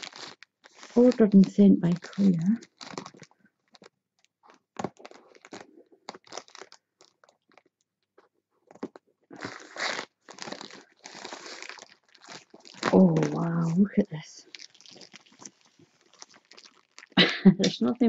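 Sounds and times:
plastic bag crinkling: 0.0s - 7.8s, 8.7s - 18.0s.

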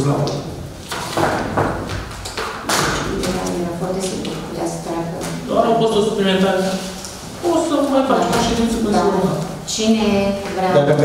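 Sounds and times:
paper stack knocking on table: 0.9s - 4.4s, 8.2s - 9.2s.

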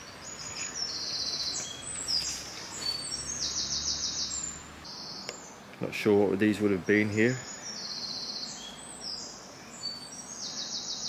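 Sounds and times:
outdoor background hiss: 0.0s - 11.0s
songbird singing: 0.0s - 11.0s.

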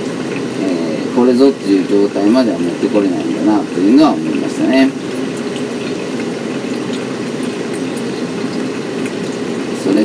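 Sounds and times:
coffee dripping into glass jug: 0.0s - 10.0s
hot water pouring onto coffee grounds: 0.0s - 10.0s.

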